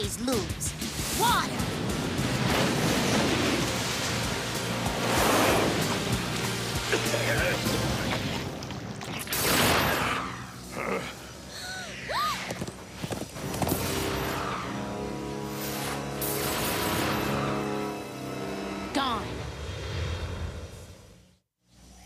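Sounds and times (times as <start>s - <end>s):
dramatic background music: 0.0s - 20.6s
loud rushing crashes: 1.0s - 6.2s.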